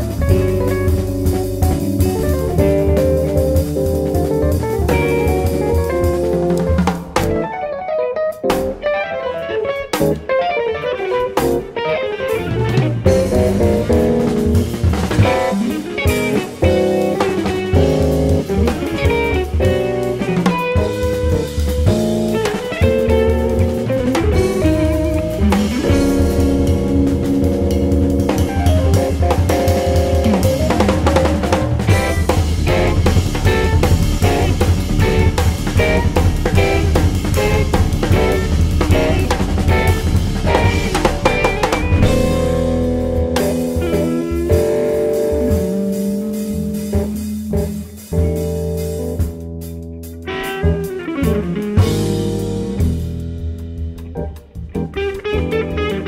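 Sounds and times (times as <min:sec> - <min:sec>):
bass: 0:00.0 - 0:07.7, 0:08.3 - 0:56.0
busy drum kit: 0:00.0 - 0:56.0
electric guitars: 0:00.0 - 0:56.0.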